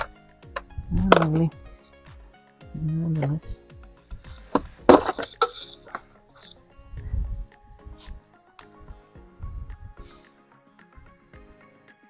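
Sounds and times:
soft background music: 0.0 - 12.0
hard plastic knocks and rattles: 4.5 - 5.6.

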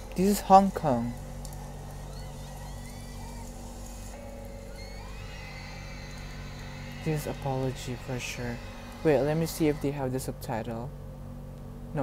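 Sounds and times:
thin wavering tones: 1.0 - 9.9
low drone: 1.0 - 10.4.

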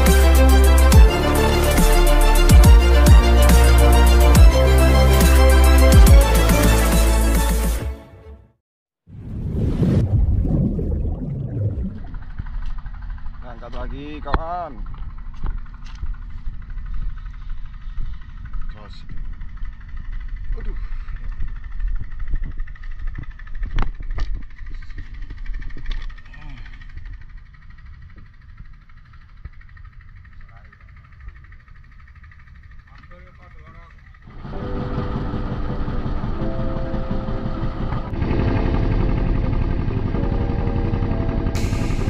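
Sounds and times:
low rumble: 9.1 - 33.0, 33.8 - 42.0
boat engine running: 11.4 - 42.0.

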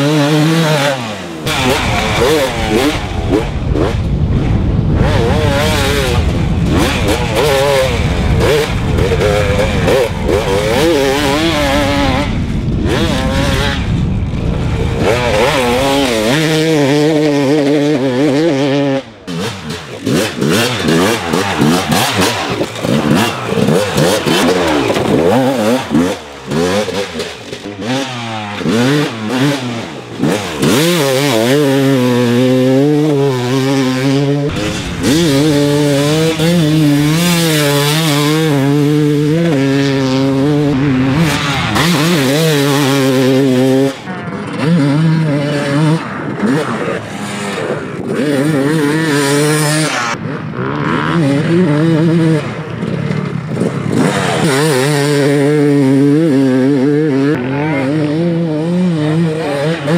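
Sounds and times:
two-stroke motorcycle engine revving: 0.0 - 59.9.

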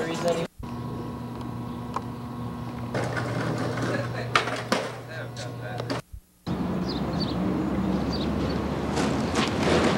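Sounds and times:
steady low hum: 0.0 - 8.8
skateboard wheels rolling on concrete: 2.6 - 9.9.

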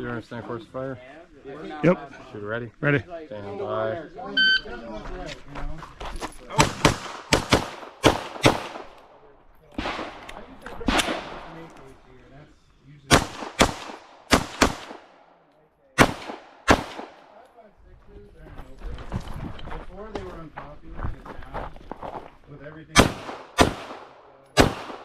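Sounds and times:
pistol gunshots: 6.6 - 9.1, 9.8 - 11.6, 13.1 - 15.4, 16.0 - 17.3, 23.0 - 25.0.

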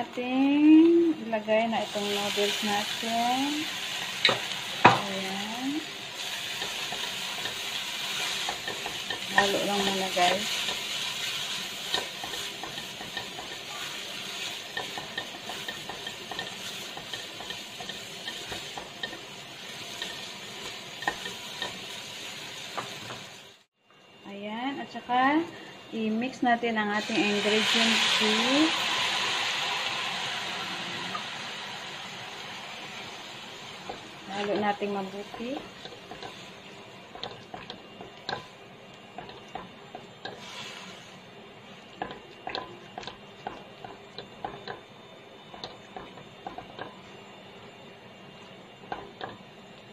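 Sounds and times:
noodles sizzling in a wok: 0.0 - 23.8, 25.5 - 49.9
spatula stirring in a wok: 1.8 - 23.7, 32.2 - 47.2.

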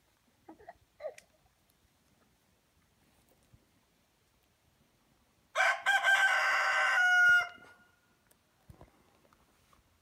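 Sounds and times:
rooster crowing: 5.6 - 7.8.

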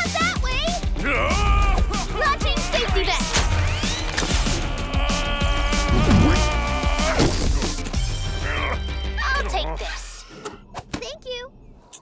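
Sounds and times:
background music: 0.0 - 10.8.

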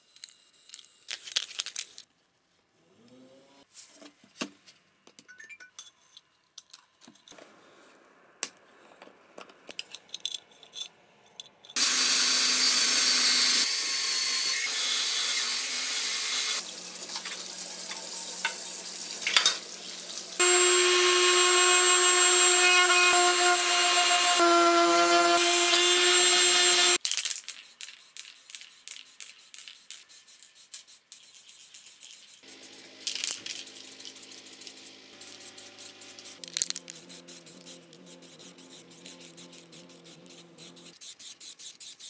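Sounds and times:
water running from a tap: 16.6 - 20.4.

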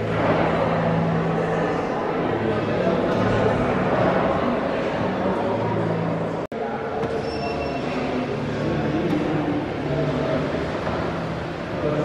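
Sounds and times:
continuous wash of noise: 0.0 - 7.2, 7.8 - 12.0.

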